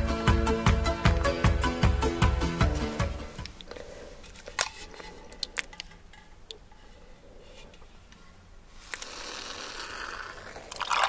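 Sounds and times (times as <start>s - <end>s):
music: 0.0s - 3.6s.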